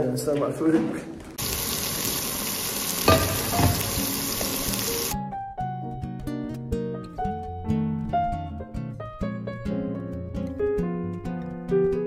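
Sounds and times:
fish sizzling in hot oil: 0:01.4 - 0:05.2
plucked-string background music: 0:05.2 - 0:12.0.

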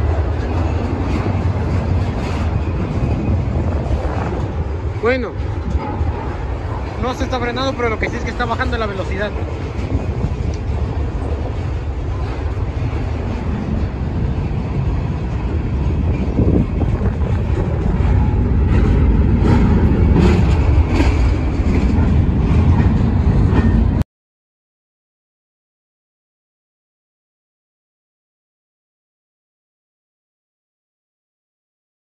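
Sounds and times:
train wheels rumbling on rails: 0:00.0 - 0:24.0.

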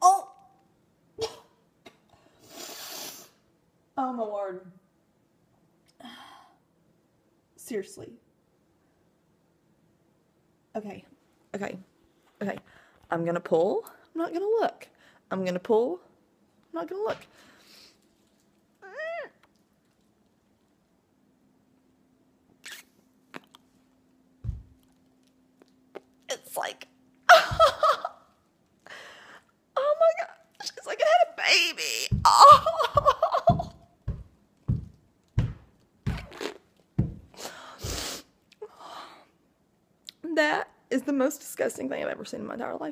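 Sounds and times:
woman puffing breaths: 0:37.3 - 0:38.3.

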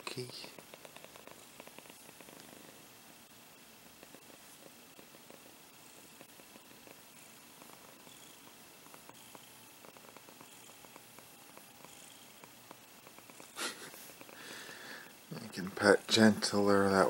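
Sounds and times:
cat purring: 0:00.0 - 0:17.0.

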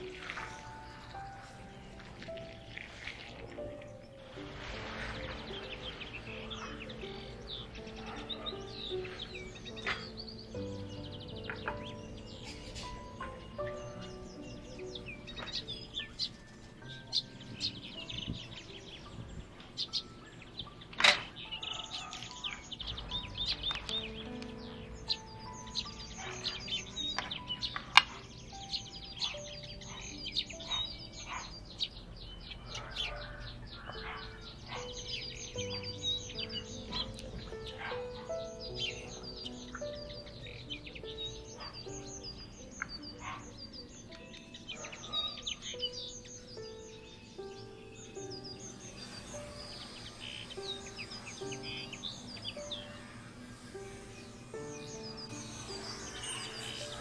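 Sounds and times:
small birds chirping: 0:00.0 - 0:57.0
soft background music: 0:00.0 - 0:57.0.

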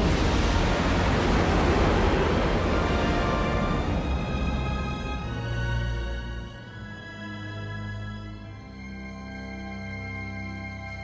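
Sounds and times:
spaceship rushing rumble: 0:00.0 - 0:05.4.

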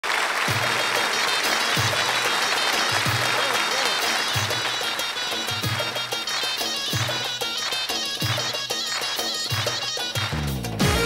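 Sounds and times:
audience applauding and clapping along: 0:00.0 - 0:11.0
folk band with accordions: 0:02.8 - 0:11.0.

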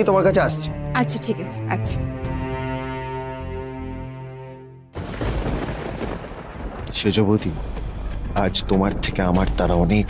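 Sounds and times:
thunder-like boom rumble: 0:05.0 - 0:09.6.

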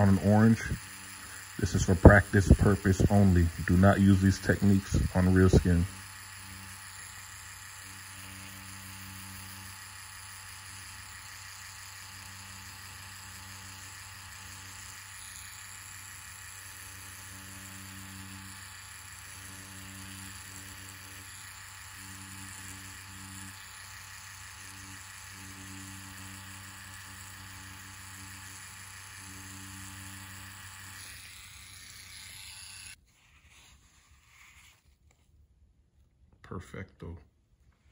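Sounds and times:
tattoo machine humming: 0:00.0 - 0:33.0.

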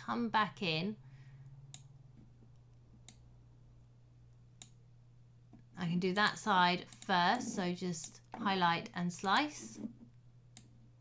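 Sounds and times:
faint low hum: 0:00.0 - 0:11.0
computer mouse clicking: 0:01.7 - 0:03.2, 0:04.6 - 0:04.8, 0:06.8 - 0:08.5.

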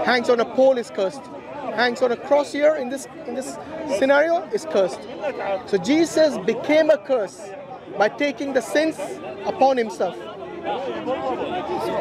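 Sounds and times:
crowd of people talking: 0:00.0 - 0:12.0.

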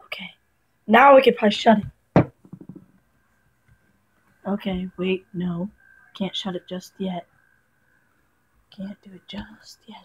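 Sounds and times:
sharp thump: 0:02.2 - 0:02.8
faint light knocks: 0:02.2 - 0:02.9.

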